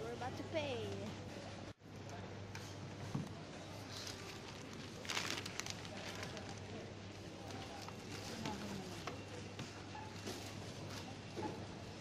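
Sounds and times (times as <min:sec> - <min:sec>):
steady store hum: 0:00.0 - 0:12.0
faint background voices: 0:01.2 - 0:12.0
plastic bag rustling: 0:03.8 - 0:06.8.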